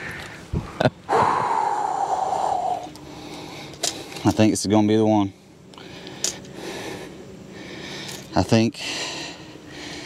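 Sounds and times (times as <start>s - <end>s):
man breathing heavily: 0.0s - 4.3s, 5.3s - 10.0s.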